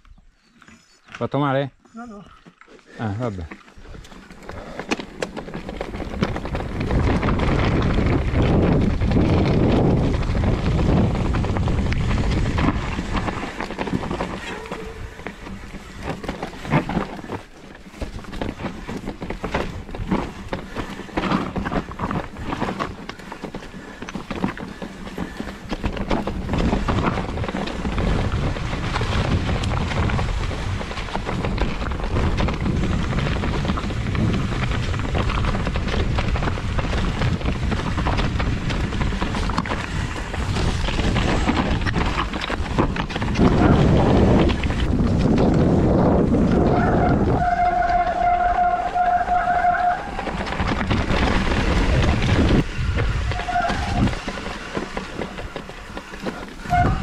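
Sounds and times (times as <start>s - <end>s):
tyres over stones and leaves: 0.4s - 57.0s
bike rattling over bumps: 2.4s - 57.0s
wind buffeting microphone: 3.8s - 57.0s.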